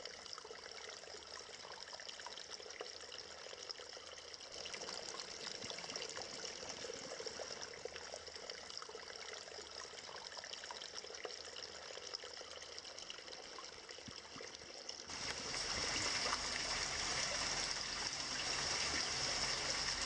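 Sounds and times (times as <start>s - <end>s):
stream trickling over rocks: 0.0s - 20.0s.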